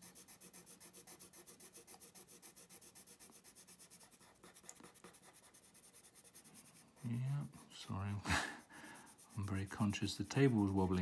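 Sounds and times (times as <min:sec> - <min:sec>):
pencil shading on paper: 0:00.0 - 0:11.0.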